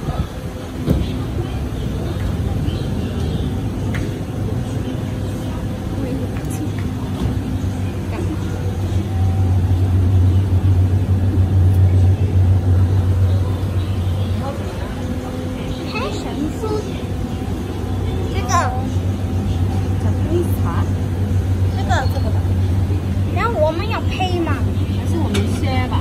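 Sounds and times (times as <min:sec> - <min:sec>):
low engine rumble: 0:00.0 - 0:26.0
steady hum: 0:00.0 - 0:26.0.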